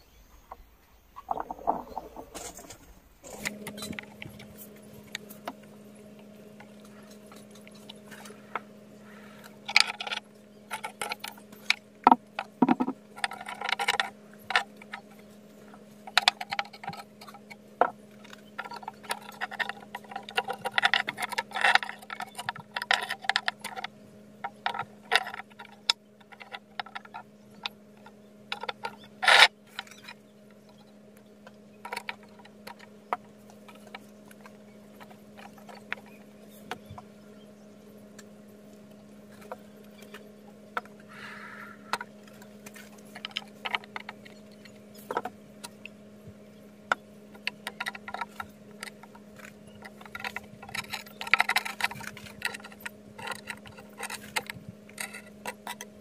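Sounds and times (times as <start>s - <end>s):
low steady hum: 0.0s - 56.0s.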